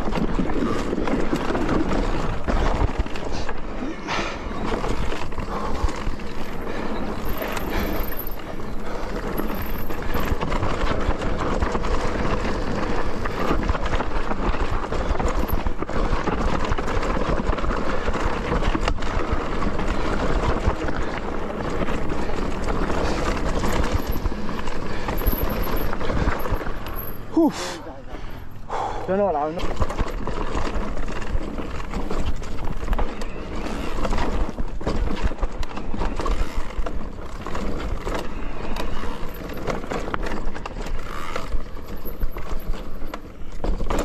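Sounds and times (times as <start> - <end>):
bike clattering over bumps: 0.0 - 27.4, 28.2 - 44.0
bike tyres on dirt trail: 0.0 - 44.0.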